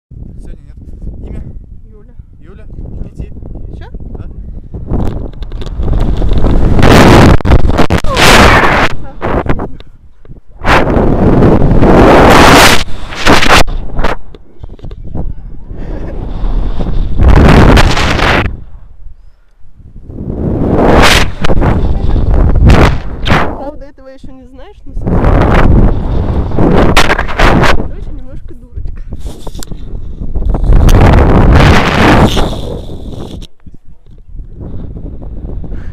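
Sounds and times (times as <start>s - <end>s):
wind rushing over microphone: 0.1s - 35.9s.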